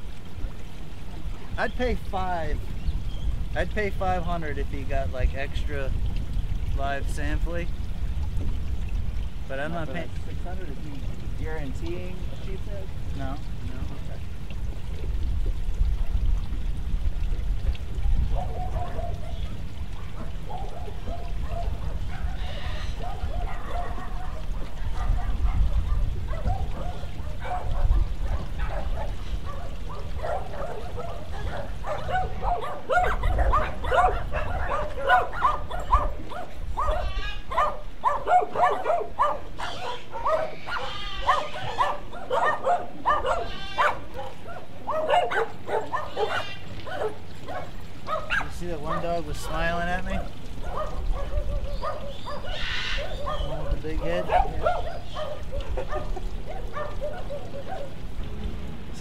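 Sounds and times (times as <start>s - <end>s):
dogs barking: 18.0s - 58.3s.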